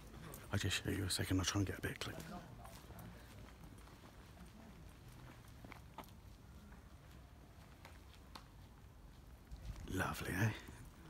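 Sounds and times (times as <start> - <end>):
soft footsteps: 1.7 - 11.0.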